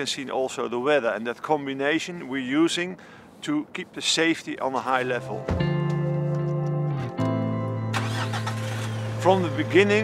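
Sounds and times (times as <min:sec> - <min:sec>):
background music chords: 0:05.0 - 0:10.0
truck engine starting and running: 0:06.4 - 0:10.0.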